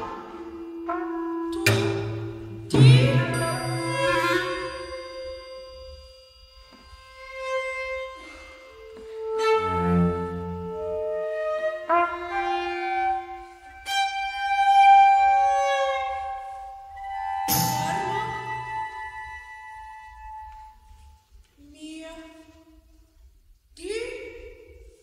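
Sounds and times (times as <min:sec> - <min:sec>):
bowed strings: 0:00.0 - 0:20.8
mallet percussion: 0:01.6 - 0:07.5, 0:16.3 - 0:20.0.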